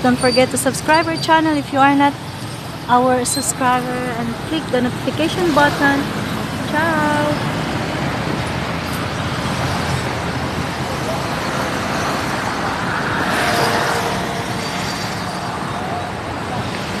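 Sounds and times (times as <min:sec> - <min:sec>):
road traffic noise: 0:00.0 - 0:17.0
vehicle passing: 0:03.5 - 0:17.0.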